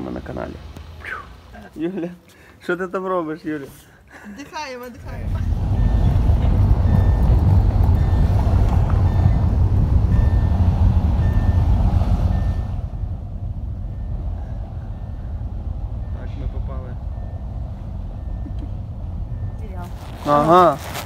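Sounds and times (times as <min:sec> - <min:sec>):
engine and road rumble: 0:00.0 - 0:04.1, 0:04.8 - 0:21.0
high electronic beep: 0:09.0 - 0:11.7.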